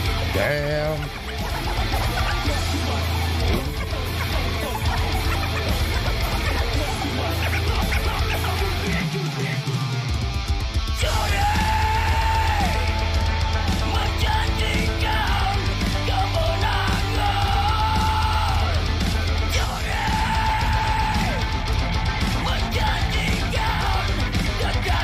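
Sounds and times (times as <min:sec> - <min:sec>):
heavy metal band music: 0:00.0 - 0:25.0.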